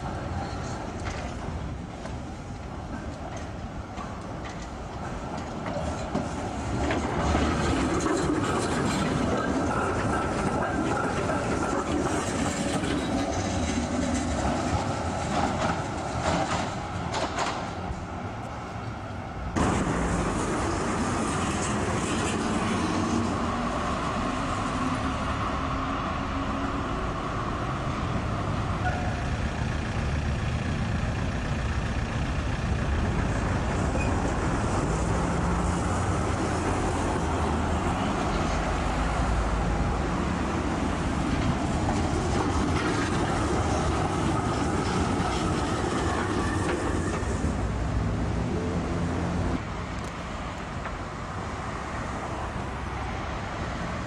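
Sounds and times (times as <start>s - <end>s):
tram rolling on rails: 0.0s - 54.0s.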